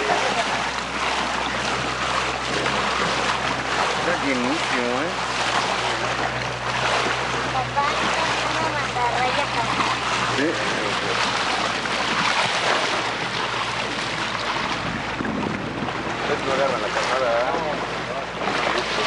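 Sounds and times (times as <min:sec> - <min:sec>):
water rushing past boat hull: 0:00.0 - 0:19.0
wind buffeting microphone: 0:00.0 - 0:19.0
voices: 0:07.4 - 0:11.1.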